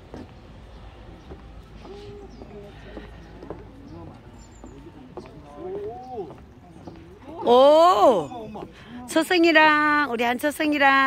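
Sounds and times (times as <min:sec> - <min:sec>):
footsteps on wooden boards: 0:00.0 - 0:07.7
faint voices: 0:00.0 - 0:11.0.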